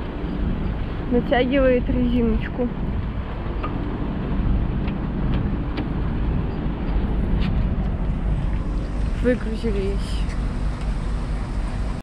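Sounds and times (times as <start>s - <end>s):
heavy vehicle engine idling: 0.0s - 12.0s.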